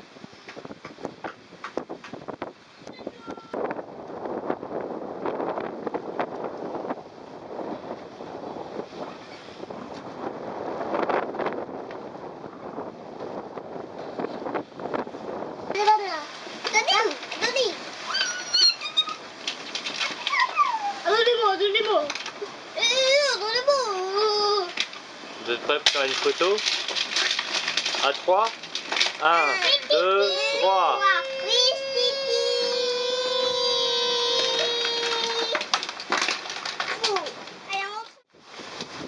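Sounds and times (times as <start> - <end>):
toddler whining squeal: 18.1 - 19.2, 20.2 - 21.1, 29.6 - 35.6
child singing a long note: 30.3 - 35.6.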